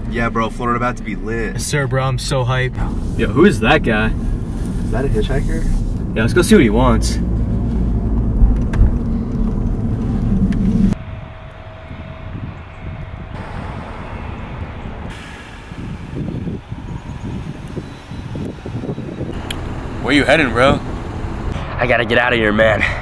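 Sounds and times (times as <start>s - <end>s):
car engine and road rumble: 0.0s - 23.0s
irregular low rumbles: 0.0s - 23.0s.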